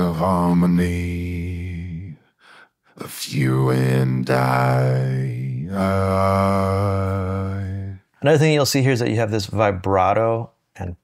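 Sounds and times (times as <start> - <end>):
sung vocal holding low note: 0.0 - 2.2, 3.0 - 8.0.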